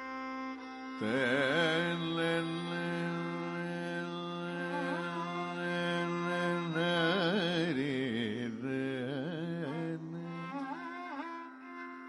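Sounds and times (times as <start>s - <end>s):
man singing long note: 1.0s - 10.6s.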